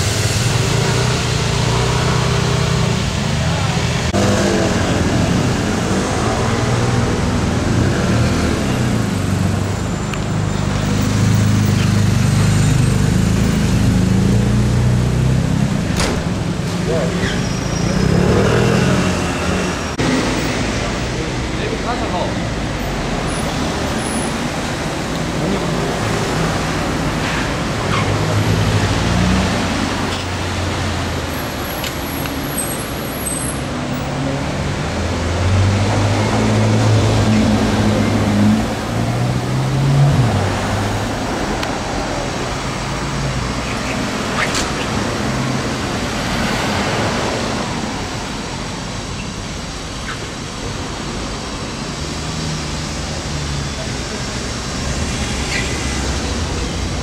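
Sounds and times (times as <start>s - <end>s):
car engine: 0.0s - 57.0s.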